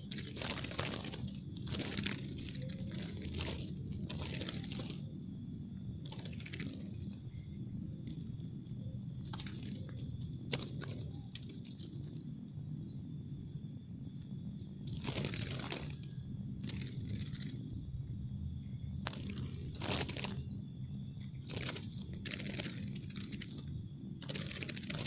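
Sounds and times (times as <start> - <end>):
doves wing flapping and rustling: 0.0 - 12.8, 14.6 - 25.0
steady low hum: 0.0 - 25.0.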